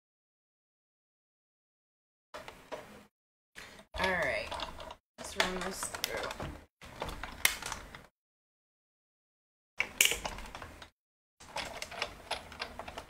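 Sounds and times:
crank clicking and creaking: 0:03.7 - 0:08.1, 0:09.8 - 0:13.0
hand-cranked die-cutting machine rolling: 0:11.4 - 0:13.0.

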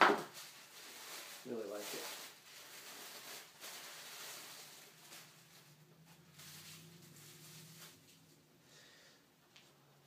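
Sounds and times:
packing wrap rustling and crinkling: 0:00.0 - 0:08.4.

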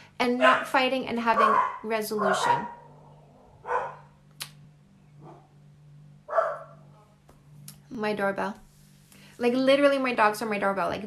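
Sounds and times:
dogs barking: 0:00.4 - 0:04.2, 0:05.2 - 0:05.5, 0:06.3 - 0:07.0.

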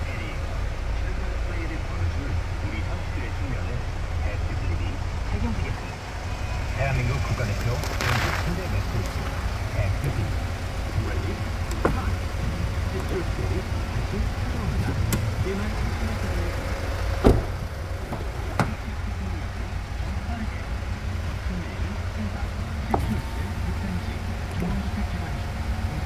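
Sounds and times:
steady low hum: 0:00.0 - 0:26.0
car switches clicking: 0:11.6 - 0:12.2, 0:14.8 - 0:15.4
car door thump: 0:11.7 - 0:12.2, 0:17.0 - 0:18.9, 0:22.9 - 0:23.4.

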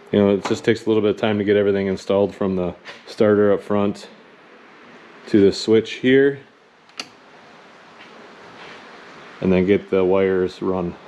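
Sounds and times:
faint steady hiss: 0:00.0 - 0:11.0
rocker switch click: 0:06.9 - 0:07.2.

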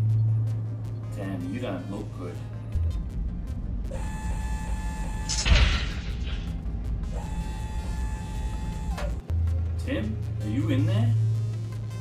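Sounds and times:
low rumbling drone: 0:00.0 - 0:11.9.

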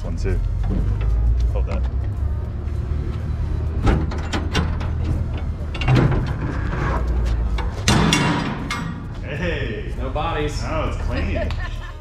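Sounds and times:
steady low rumble: 0:00.0 - 0:12.0
metal clanks from container doors: 0:03.7 - 0:09.2.

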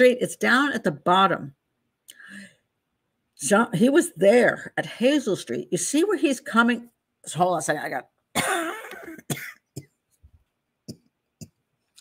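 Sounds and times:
woman coughing: 0:08.3 - 0:10.0
woman clearing her throat: 0:08.4 - 0:10.0.

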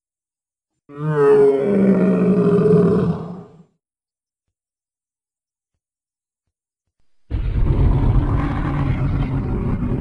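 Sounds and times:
dinosaur roar: 0:00.9 - 0:03.7, 0:07.3 - 0:10.0.

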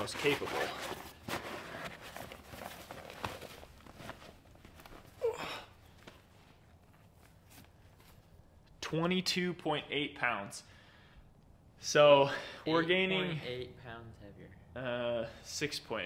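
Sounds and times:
fabric bag rustling: 0:00.0 - 0:08.3.

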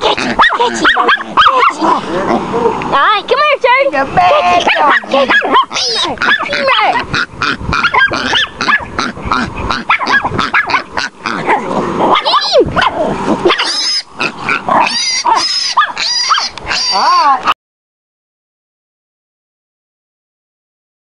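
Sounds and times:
small dog barking and yipping: 0:00.0 - 0:02.0, 0:04.5 - 0:07.1, 0:07.8 - 0:09.0, 0:09.8 - 0:13.9, 0:14.8 - 0:16.6
pig grunts and squeals: 0:00.0 - 0:02.6, 0:04.3 - 0:17.6.

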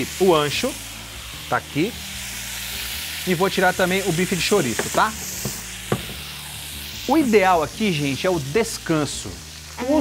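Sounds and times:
meat sizzling: 0:00.0 - 0:10.0
steak knocking on cutting board: 0:04.7 - 0:06.3.

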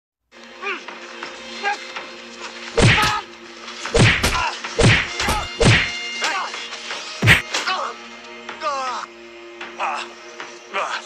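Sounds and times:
hard whack blows: 0:02.8 - 0:03.2, 0:04.0 - 0:06.0, 0:07.2 - 0:07.6.

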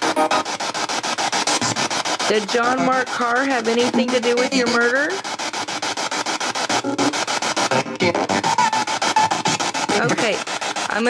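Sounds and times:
radio scanner static sweeping: 0:00.0 - 0:11.0.

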